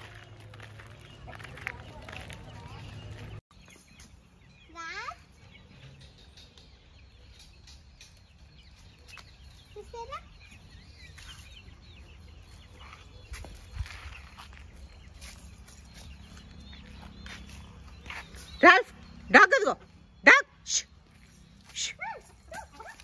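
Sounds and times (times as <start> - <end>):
chickens clucking: 0.1 - 19.9.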